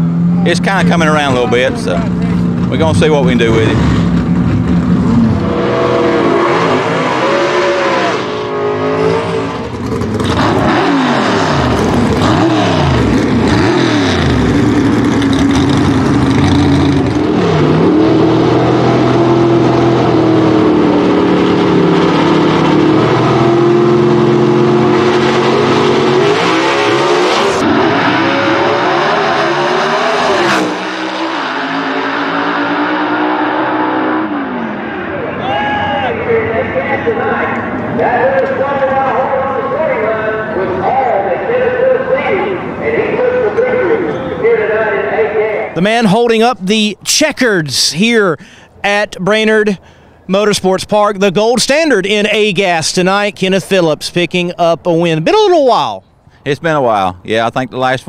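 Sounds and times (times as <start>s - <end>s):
drag car engines revving: 0.0s - 47.6s.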